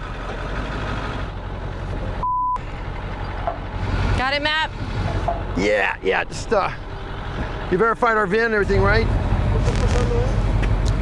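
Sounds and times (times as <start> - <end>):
truck engine idling: 0.0 - 11.0
censor bleep: 2.2 - 2.6.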